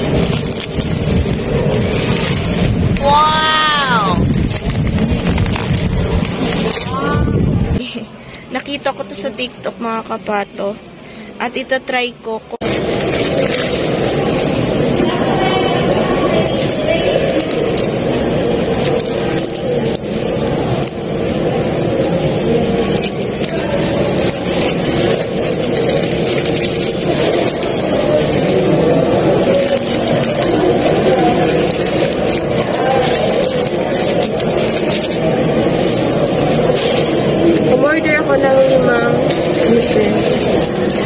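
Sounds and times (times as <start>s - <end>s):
plastic packaging crinkling: 0.0s - 10.6s, 12.5s - 41.0s
low rumble and murmur: 0.0s - 41.0s.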